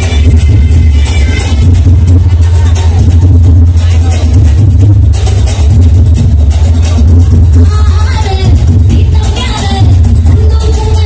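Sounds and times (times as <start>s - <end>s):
dance music with booming bass: 0.0s - 11.0s.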